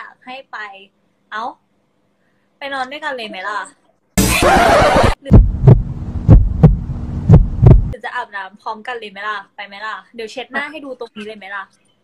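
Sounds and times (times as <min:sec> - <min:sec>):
heartbeat double thumps: 0:04.2 - 0:08.0
low hum: 0:04.2 - 0:08.0.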